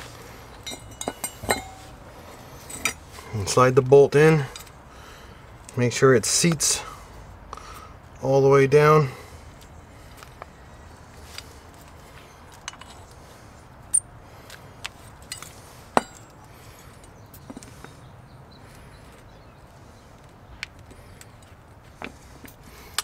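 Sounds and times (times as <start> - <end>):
metal parts clicking and knocking: 0.5 - 1.9.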